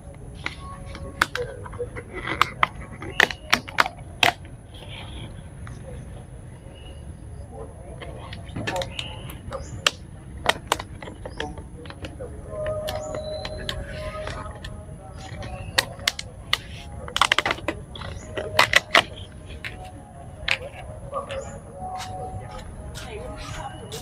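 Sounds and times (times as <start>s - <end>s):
food containers clicking: 0.4s - 4.6s, 8.0s - 24.0s.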